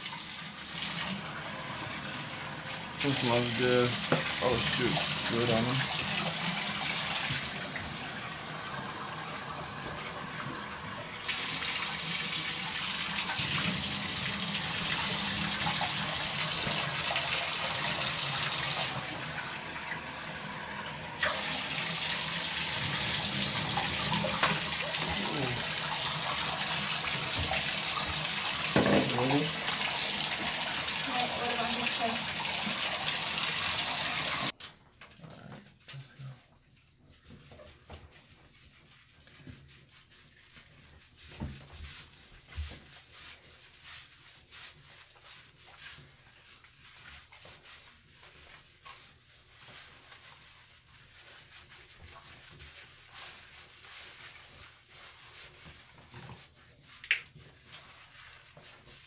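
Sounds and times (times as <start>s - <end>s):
tap water running into bathtub: 0.0s - 59.0s.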